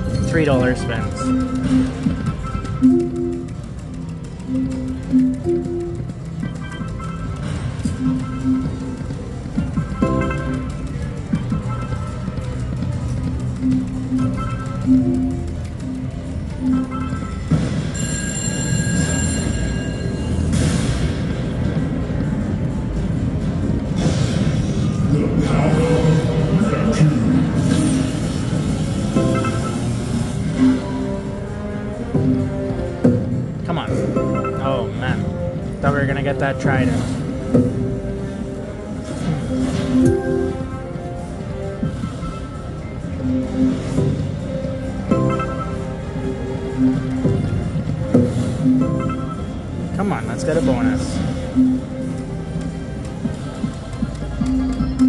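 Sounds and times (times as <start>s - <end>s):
slot machine electronic notes: 0.0s - 24.3s, 25.0s - 55.0s
background hubbub: 0.0s - 55.0s.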